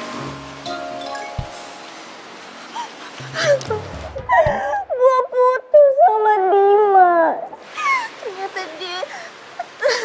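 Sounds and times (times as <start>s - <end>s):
woman crying in high wails: 2.8s - 7.4s.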